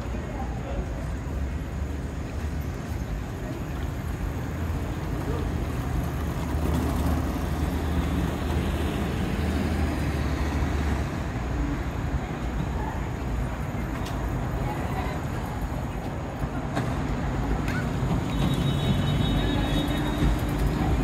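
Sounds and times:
cars idling and moving off: 0.0s - 21.0s.

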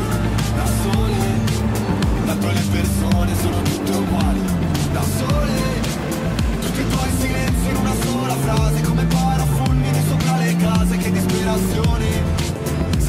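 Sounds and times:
car engine passing: 0.0s - 13.0s
music with beat and vocals: 0.0s - 13.0s.

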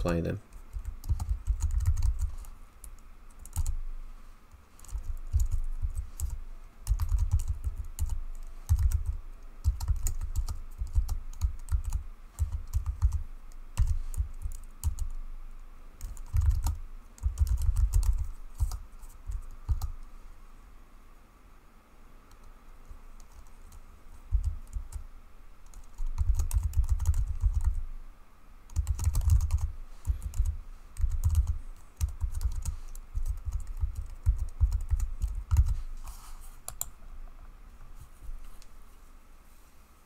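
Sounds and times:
typing on computer keyboard: 0.7s - 2.3s, 2.9s - 3.8s, 4.8s - 13.2s, 13.8s - 15.2s, 16.0s - 19.9s, 25.6s - 27.8s, 28.7s - 35.8s.

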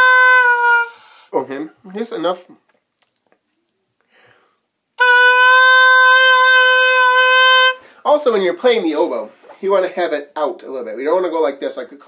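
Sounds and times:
oboe playing long note: 0.0s - 1.3s, 5.0s - 7.9s.

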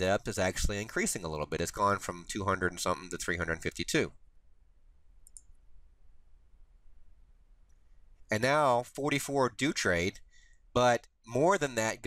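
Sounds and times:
computer mouse double click: 5.2s - 5.6s.

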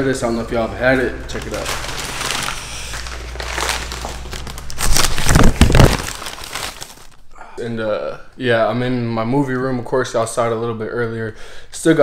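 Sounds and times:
paper bag crinkling: 0.9s - 7.2s.

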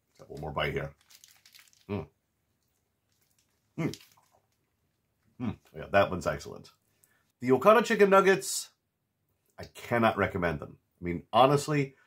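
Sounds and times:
man chewing food: 1.1s - 5.4s.

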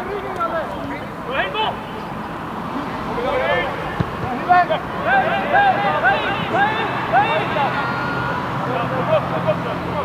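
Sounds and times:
people shouting and calling: 3.3s - 9.2s.

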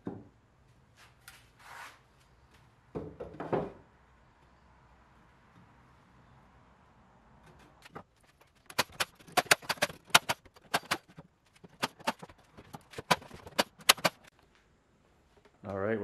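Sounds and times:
nail gun firing into wood: 8.7s - 14.3s.

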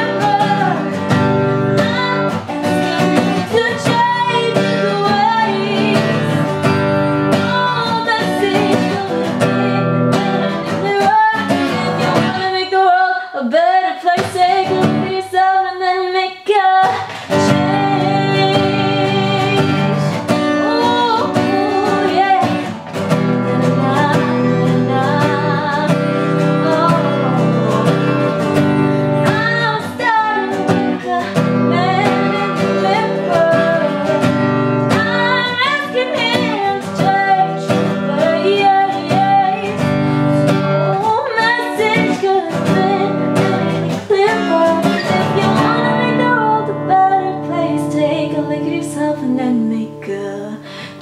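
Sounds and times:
strummed acoustic guitar: 0.0s - 13.2s, 14.0s - 15.4s, 16.8s - 51.0s
woman singing: 0.0s - 51.0s.

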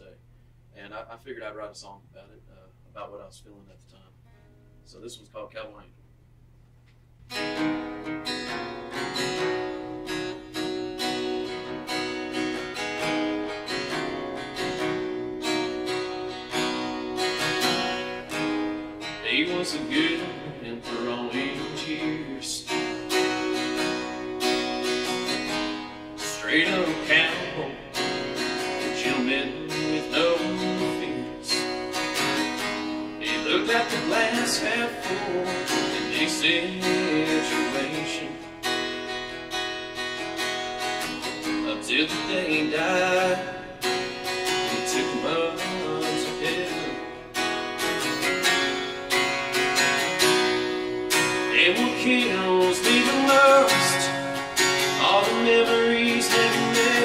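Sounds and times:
acoustic guitar strumming: 7.2s - 57.0s
man singing: 19.1s - 23.1s, 26.2s - 31.7s, 33.2s - 38.5s, 41.4s - 47.2s, 51.4s - 57.0s.

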